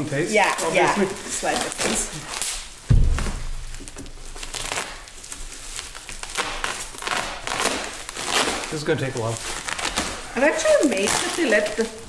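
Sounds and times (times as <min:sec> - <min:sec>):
plastic wrapping crinkling: 0:00.0 - 0:12.0
low thump: 0:02.9 - 0:04.2.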